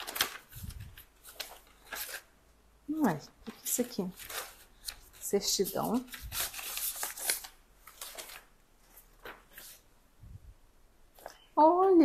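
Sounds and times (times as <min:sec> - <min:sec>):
paper rustling: 0:00.0 - 0:02.3, 0:03.4 - 0:09.9.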